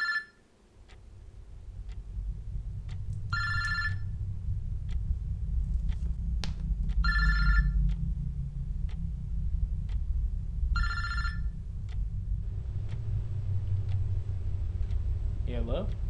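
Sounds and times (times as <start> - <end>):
mobile phone ringing: 0.0 - 0.4.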